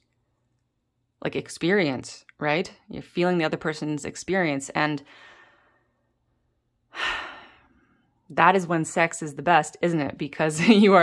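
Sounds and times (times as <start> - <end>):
woman breathing: 5.0 - 6.2, 6.9 - 8.3.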